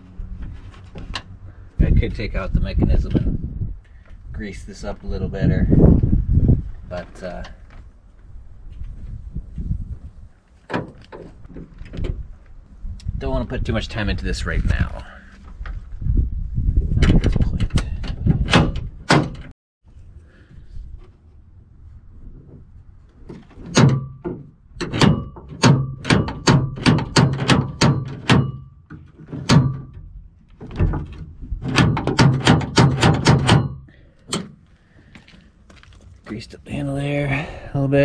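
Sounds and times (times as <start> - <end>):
door latch clunking and clicking: 10.7 - 12.2, 17.0 - 19.5, 23.6 - 34.6.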